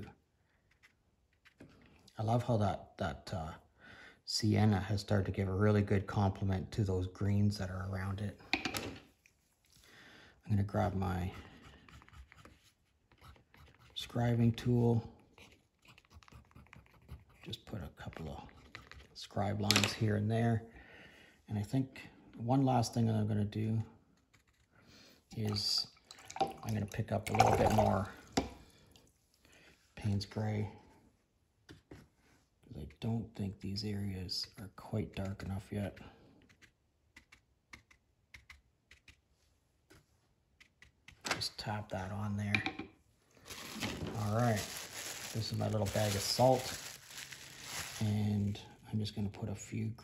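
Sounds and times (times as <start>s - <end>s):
scribing tool scratching paper: 11.4s - 14.0s, 15.4s - 17.7s.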